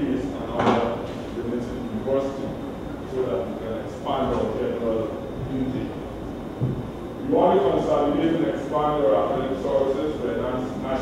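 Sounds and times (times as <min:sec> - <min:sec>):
man speaking: 0:00.0 - 0:06.0, 0:07.2 - 0:11.0.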